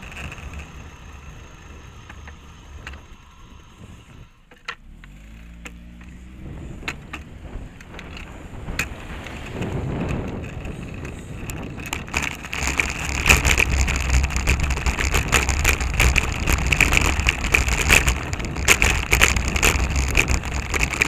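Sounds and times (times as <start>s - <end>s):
bicycle clicks and rattles: 0.0s - 6.2s, 6.8s - 21.0s
bicycle tyre rumble: 0.0s - 21.0s
wind on microphone: 6.2s - 21.0s.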